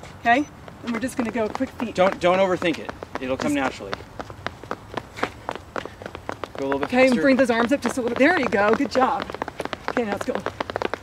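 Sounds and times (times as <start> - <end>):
running shoes patting on pavement: 0.0 - 11.0.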